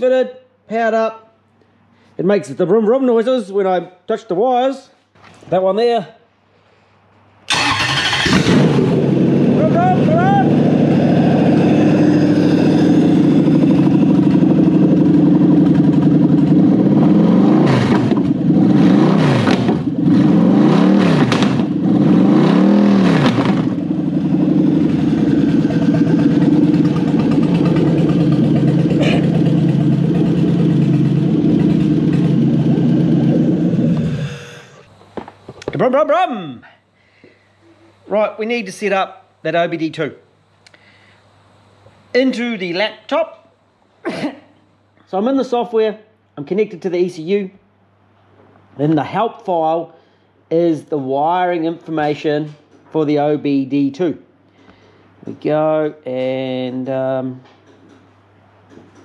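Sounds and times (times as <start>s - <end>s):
car engine starting and revving: 7.5s - 34.8s.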